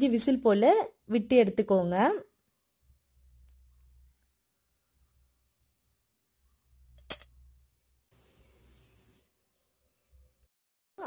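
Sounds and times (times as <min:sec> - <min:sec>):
faint low hum: 0:02.4 - 0:10.5.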